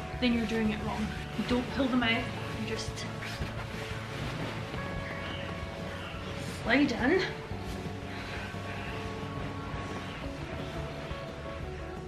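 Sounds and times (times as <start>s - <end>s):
background music: 0.0s - 12.0s
duvet rustling: 0.0s - 12.0s.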